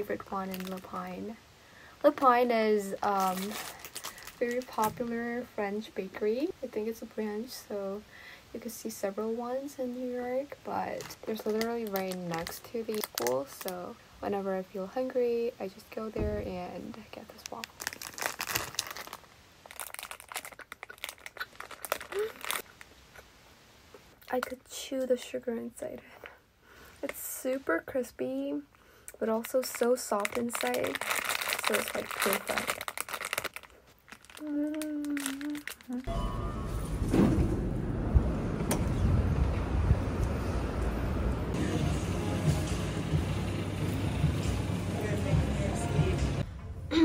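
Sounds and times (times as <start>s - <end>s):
plastic wrapper crinkling: 0.0s - 1.4s, 2.1s - 5.2s, 10.7s - 14.0s, 16.9s - 23.0s, 29.3s - 36.1s
low rumble of traffic: 36.1s - 47.0s.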